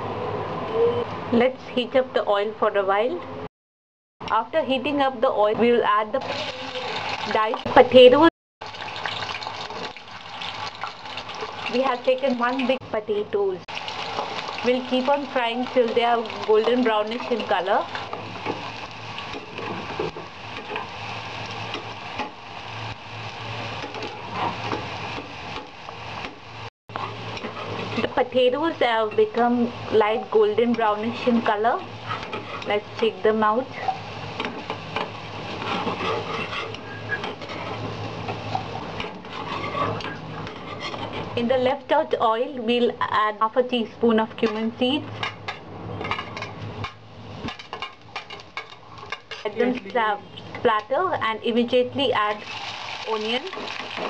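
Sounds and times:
potatoes sizzling in hot oil: 6.0 - 45.4, 46.3 - 54.0.

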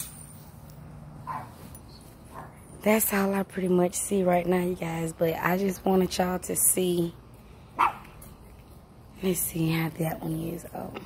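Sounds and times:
dog bark: 1.2 - 1.6, 7.8 - 8.1.

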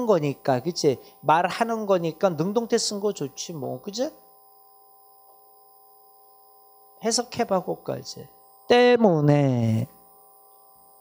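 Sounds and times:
faint electrical hum: 0.0 - 11.0
man speaking: 7.0 - 10.0.

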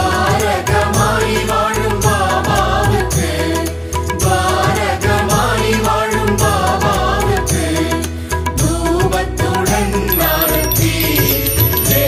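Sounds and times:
sharp percussion strikes: 10.1 - 12.0.

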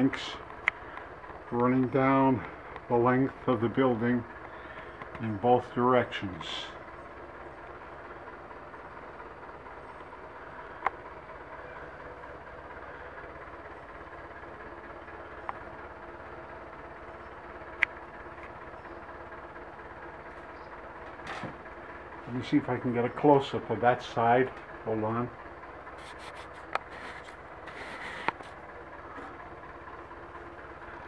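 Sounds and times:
steady background hum: 0.0 - 31.0.

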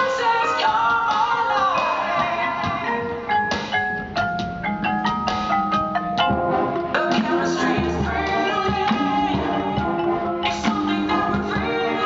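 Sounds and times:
marching band mallet percussion: 0.0 - 12.0.

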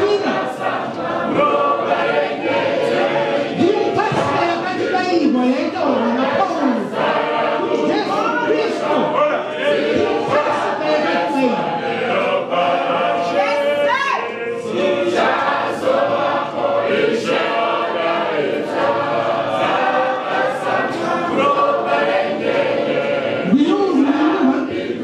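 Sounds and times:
group singing a hymn: 0.0 - 25.0.

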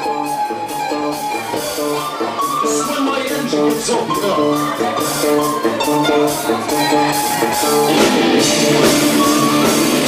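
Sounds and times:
distorted electric guitars: 0.0 - 10.0
rock band playing: 0.0 - 10.0
singer chanting: 1.8 - 8.0.

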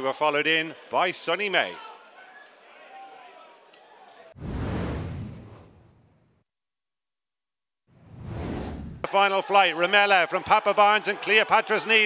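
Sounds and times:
rising whoosh: 4.4 - 6.2, 8.0 - 9.1.

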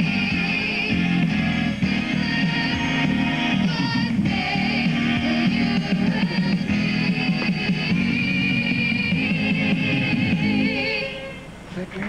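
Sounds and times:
group singing: 0.0 - 11.5
instrumental accompaniment: 0.0 - 11.6.

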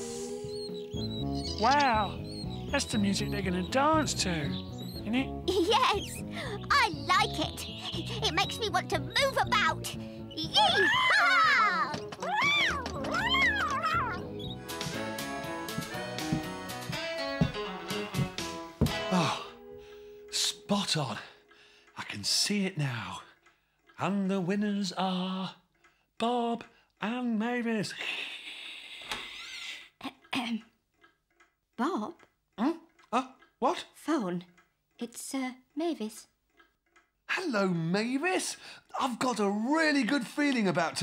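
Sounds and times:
cartoon cat meowing: 10.6 - 14.3
man sighing: 19.0 - 19.6.

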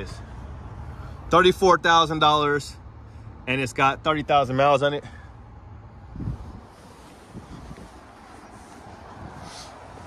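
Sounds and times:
wind rumbling on microphone: 6.0 - 10.0.

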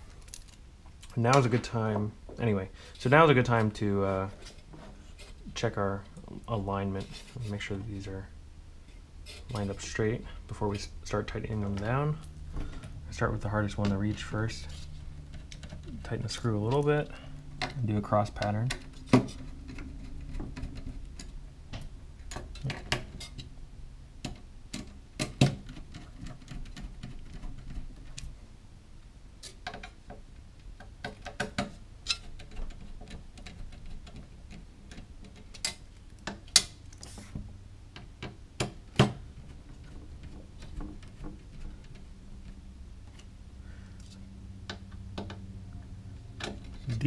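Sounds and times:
faint low hum: 0.0 - 47.0.

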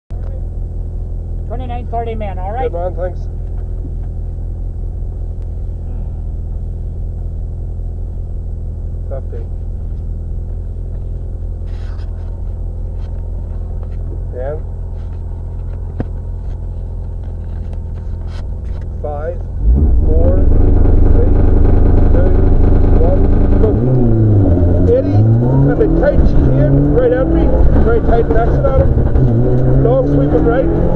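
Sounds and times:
car engine idling: 0.1 - 30.9.

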